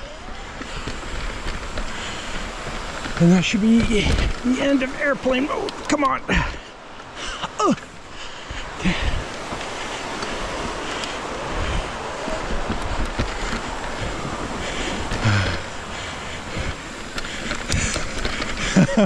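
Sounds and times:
bike tyres on dirt: 0:00.0 - 0:19.0
wind rushing over microphone: 0:00.0 - 0:19.0.

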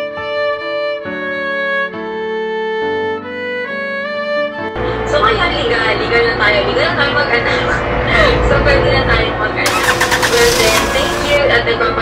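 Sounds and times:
car engine cranking and starting: 0:09.6 - 0:11.4.

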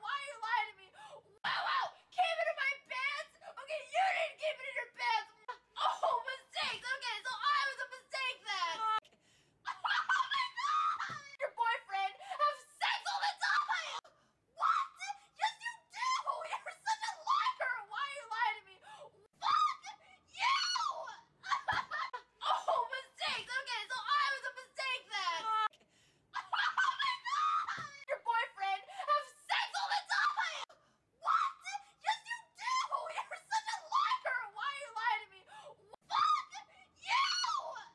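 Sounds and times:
girl's high-pitched emotional cries: 0:00.0 - 0:09.0, 0:09.7 - 0:14.0, 0:14.6 - 0:25.7, 0:26.4 - 0:37.9
woman squealing with excitement: 0:09.7 - 0:11.4, 0:19.4 - 0:23.1, 0:26.4 - 0:28.1, 0:36.1 - 0:37.9.

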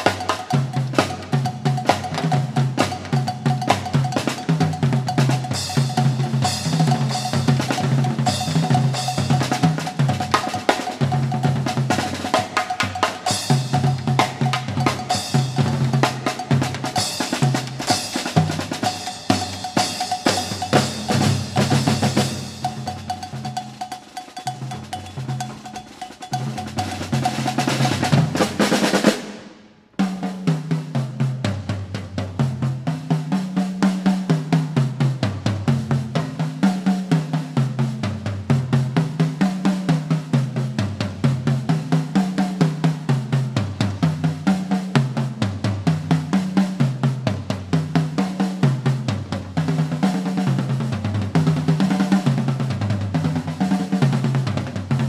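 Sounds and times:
cymbal crashes: 0:00.0 - 0:29.7
tom and snare drumming: 0:00.0 - 0:55.0.

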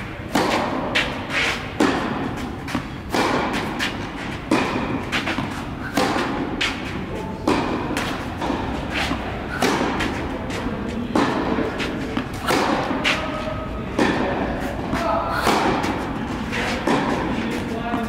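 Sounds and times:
tennis ball hit by rackets: 0:00.0 - 0:18.0.

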